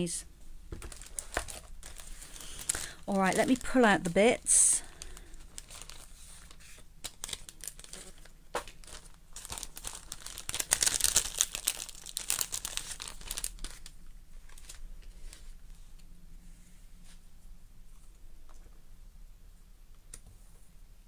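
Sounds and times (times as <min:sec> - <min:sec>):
paper crinkling and rustling: 0:00.7 - 0:04.2, 0:04.8 - 0:16.0.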